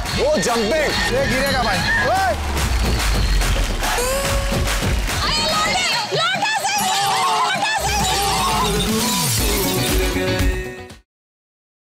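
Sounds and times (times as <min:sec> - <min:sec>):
upbeat music with heavy bass: 0:00.0 - 0:11.0.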